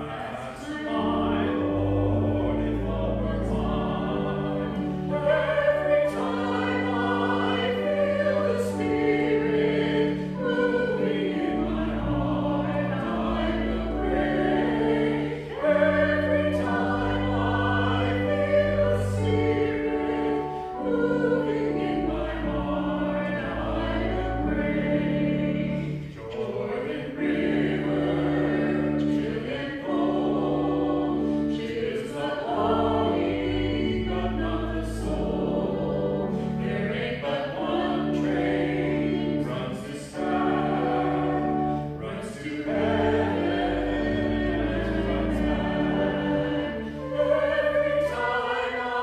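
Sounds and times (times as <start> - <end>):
choir singing a hymn: 0.0 - 49.0
sustained low chords: 0.7 - 49.0.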